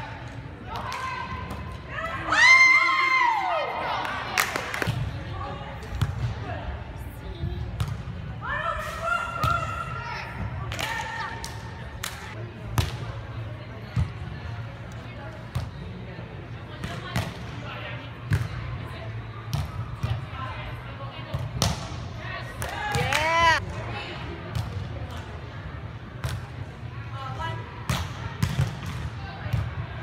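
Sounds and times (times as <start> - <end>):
volleyball slaps: 10.7 - 13.1, 21.3 - 22.0, 22.6 - 23.4.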